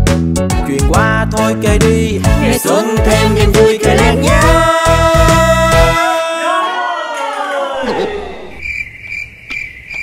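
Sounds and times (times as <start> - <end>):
cricket chirping: 8.3 - 10.0.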